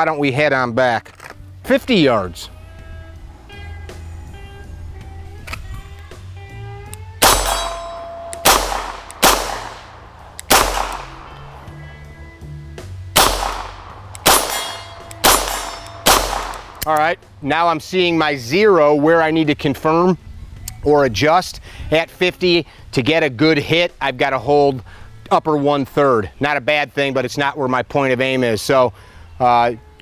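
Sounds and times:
steel targets clanging: 7.2s - 8.5s, 14.2s - 16.2s
pistol shots: 7.2s - 11.7s, 13.2s - 16.9s.

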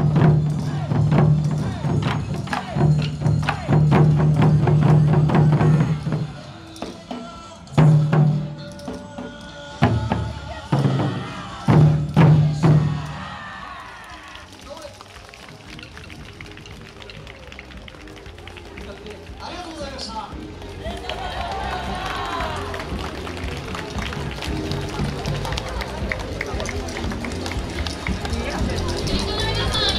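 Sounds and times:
taiko drums striking: 0.0s - 7.0s, 9.8s - 13.3s
crowd chatter and calling out: 0.0s - 29.9s.

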